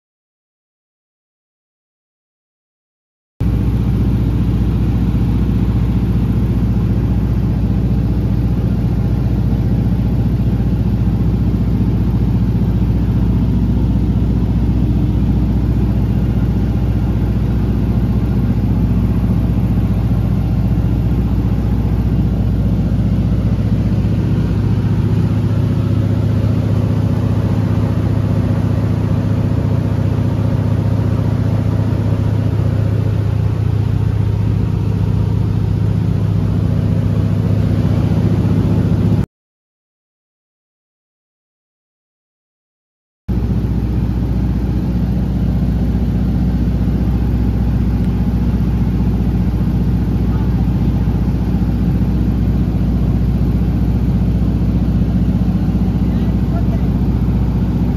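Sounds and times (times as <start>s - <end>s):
propeller plane droning: 3.4s - 39.2s, 43.3s - 57.9s.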